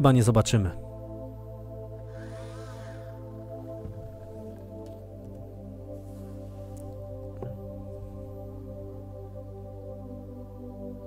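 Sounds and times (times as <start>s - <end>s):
ambient drone music: 0.6s - 11.0s
soft hiss: 2.0s - 8.8s.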